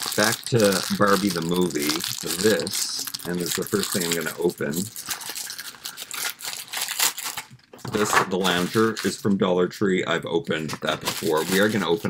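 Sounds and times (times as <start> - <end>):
plastic bag crinkling: 0.0 - 9.2, 10.8 - 12.0.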